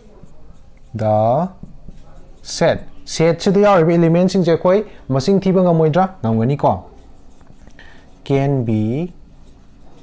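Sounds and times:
marker writing on whiteboard: 0.0s - 4.6s, 6.8s - 10.0s
man speaking: 0.9s - 1.6s, 2.4s - 7.0s, 8.2s - 9.2s.

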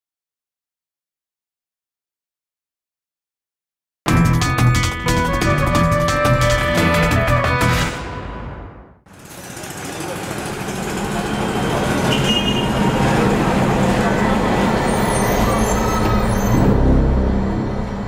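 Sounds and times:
street traffic: 7.9s - 18.0s
low engine rumble: 16.2s - 18.0s.

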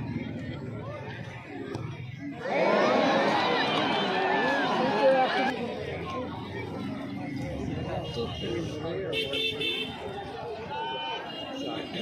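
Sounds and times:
crowd murmuring: 0.0s - 12.0s
crowd cheering and shouting: 2.3s - 5.8s.

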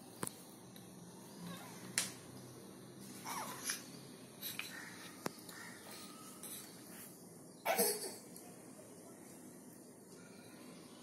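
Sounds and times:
cough: 7.6s - 8.2s.

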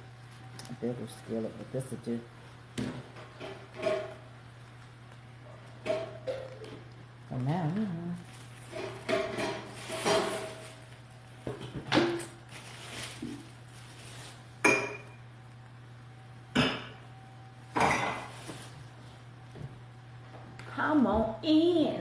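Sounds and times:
steady low hum: 0.0s - 22.0s
metal pots and pans clanking: 8.7s - 10.7s.

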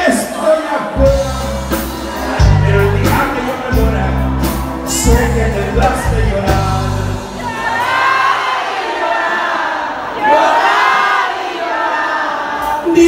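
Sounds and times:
live band music: 0.0s - 8.5s
crowd noise: 0.0s - 13.0s
people singing: 1.0s - 13.0s.

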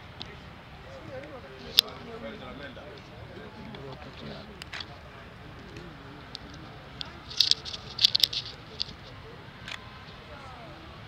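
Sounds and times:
faint distant voices: 0.0s - 11.0s.

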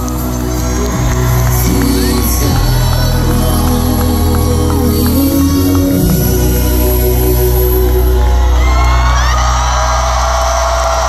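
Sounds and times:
crowd cheering and whooping: 0.0s - 11.0s
rock band sustained chord: 0.0s - 11.0s.

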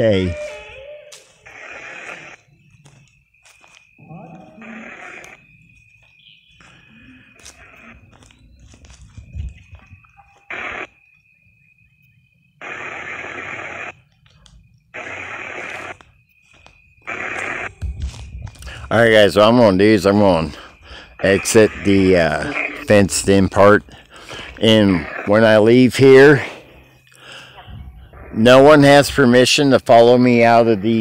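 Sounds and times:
faint steady high tone: 0.0s - 1.5s, 8.3s - 10.5s
radio static bursts: 1.4s - 2.5s, 4.6s - 5.4s, 7.6s - 8.3s, 10.0s - 11.0s, 12.6s - 14.0s, 14.9s - 16.1s, 17.0s - 26.5s.

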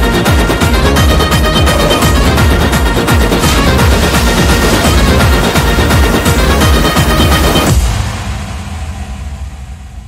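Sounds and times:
electronic dance music: 0.0s - 8.4s.

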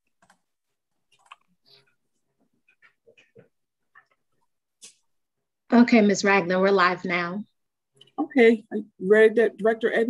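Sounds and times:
faint clicks and taps: 0.0s - 5.4s.

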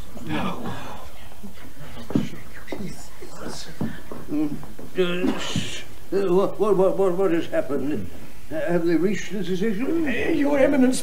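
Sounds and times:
voices whispering: 0.0s - 11.0s.

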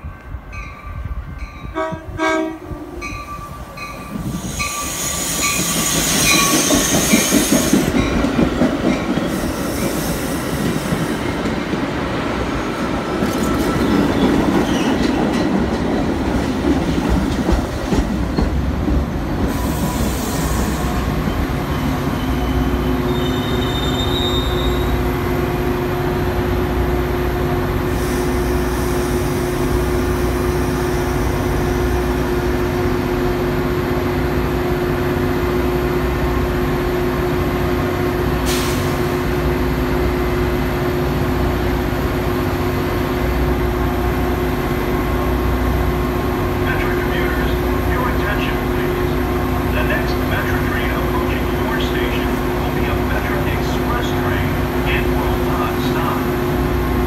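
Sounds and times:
diesel locomotive humming: 0.0s - 57.0s
train braking to a stop: 3.1s - 11.7s, 19.4s - 25.3s, 38.2s - 39.5s
wheel and brake squeal: 21.3s - 25.0s.

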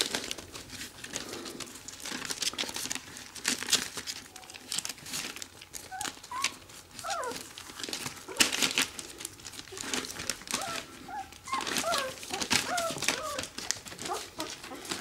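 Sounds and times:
newspaper rustling: 0.0s - 15.0s
puppies whimpering: 4.4s - 15.0s.

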